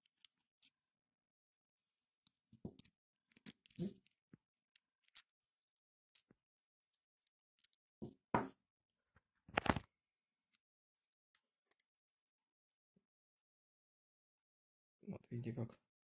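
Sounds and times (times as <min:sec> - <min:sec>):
small parts clicking and scraping: 0:00.0 - 0:00.8, 0:02.2 - 0:05.5, 0:06.1 - 0:07.8, 0:11.3 - 0:11.9.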